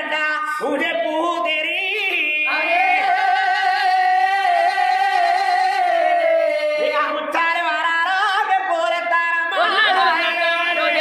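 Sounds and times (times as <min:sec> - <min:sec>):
person singing unaccompanied: 0:00.0 - 0:11.0.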